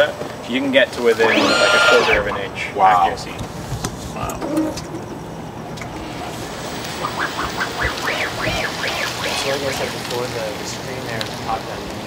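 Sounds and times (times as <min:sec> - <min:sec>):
wind on microphone: 0:06.5 - 0:09.8.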